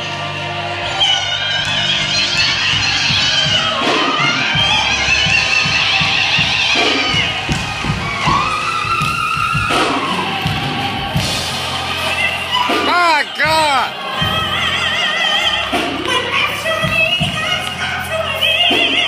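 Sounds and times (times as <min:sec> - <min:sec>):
church band playing: 0:00.0 - 0:19.0
congregation crowd noise: 0:00.0 - 0:19.0
solo voice singing gospel: 0:00.4 - 0:19.0.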